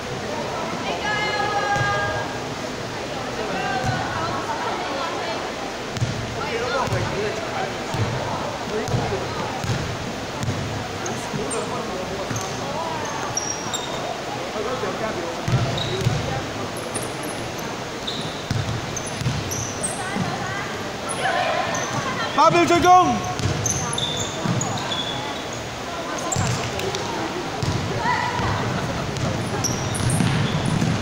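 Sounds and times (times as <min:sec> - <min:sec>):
players' voices echoing: 0:00.0 - 0:31.0
basketball bouncing on court: 0:06.0 - 0:07.2, 0:07.9 - 0:11.5, 0:15.4 - 0:16.4, 0:18.2 - 0:20.4, 0:23.2 - 0:24.8, 0:26.3 - 0:27.0, 0:27.6 - 0:31.0
sneaker squeaks: 0:10.4 - 0:14.1, 0:15.5 - 0:20.4, 0:21.0 - 0:22.3, 0:23.2 - 0:27.0, 0:29.2 - 0:31.0.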